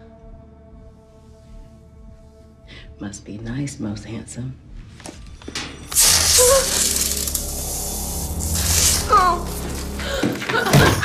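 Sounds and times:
low steady drone: 5.6s - 11.0s
clothes iron hissing: 5.9s - 11.0s.

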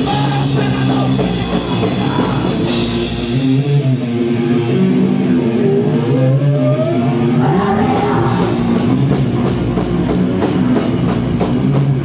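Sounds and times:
bass guitar: 0.0s - 12.0s
distorted electric guitar: 0.0s - 12.0s.

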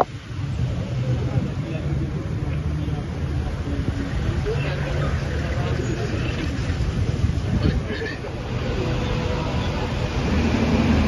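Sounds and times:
people's voices: 0.0s - 10.7s
heavy vehicle engines idling: 0.0s - 11.0s.

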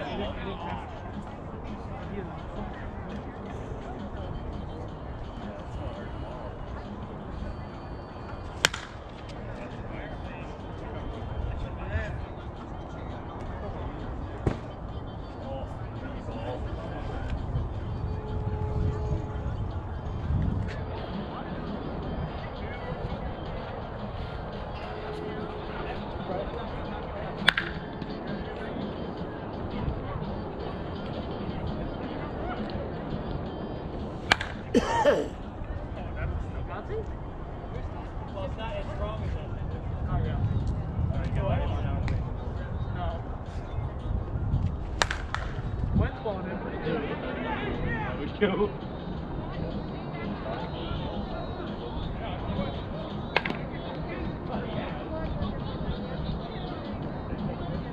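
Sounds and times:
low background noise: 0.0s - 57.9s
bat striking ball: 8.6s - 9.0s, 27.5s - 27.8s, 34.2s - 34.7s, 45.0s - 45.6s.

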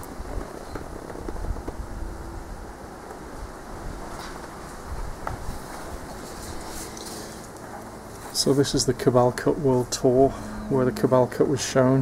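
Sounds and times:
low background rumble: 4.8s - 12.0s.

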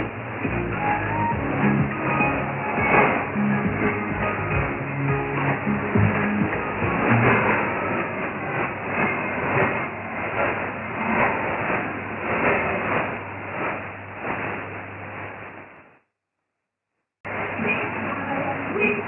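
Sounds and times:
muffled song over radio: 0.0s - 9.1s.

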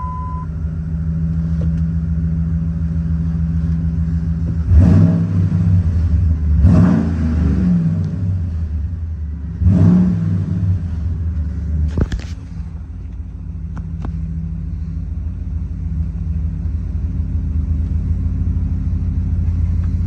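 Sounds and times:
truck engine idling and revving: 0.0s - 20.0s.

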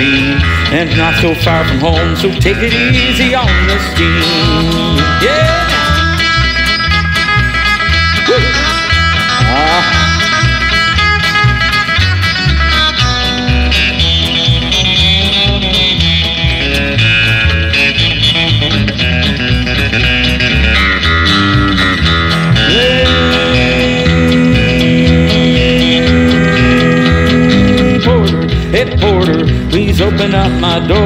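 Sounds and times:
bass line: 0.0s - 31.0s
electric guitar lead: 0.0s - 31.0s.

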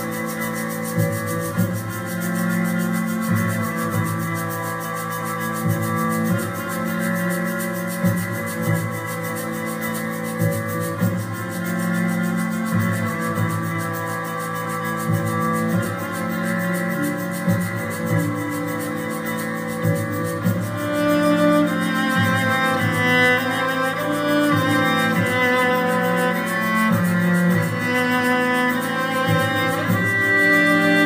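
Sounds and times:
bowed cello drone: 0.0s - 31.0s.

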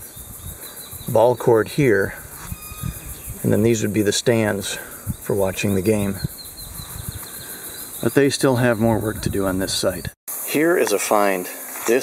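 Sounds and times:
wind rumbling on microphone: 0.0s - 10.2s
high insect chirps: 0.0s - 12.0s.

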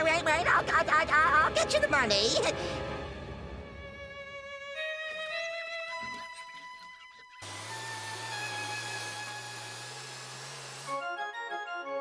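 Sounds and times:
machine motor humming: 7.4s - 11.0s.

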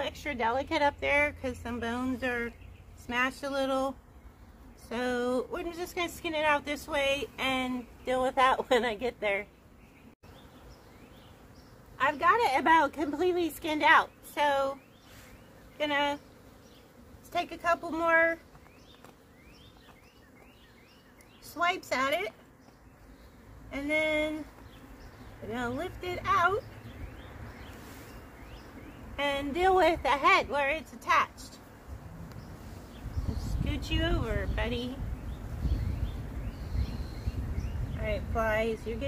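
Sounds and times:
wind rumble on microphone: 31.9s - 39.0s
faint bird chirps: 35.0s - 38.0s.

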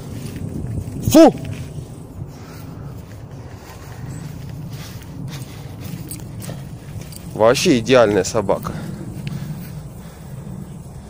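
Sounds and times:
footsteps on dirt path: 0.0s - 11.0s
steady low rumble: 0.0s - 11.0s.

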